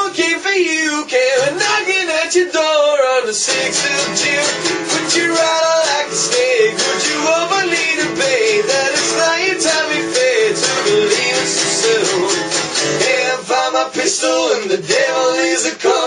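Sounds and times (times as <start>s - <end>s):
acoustic guitar strumming: 0.0s - 16.0s
man singing: 0.0s - 16.0s.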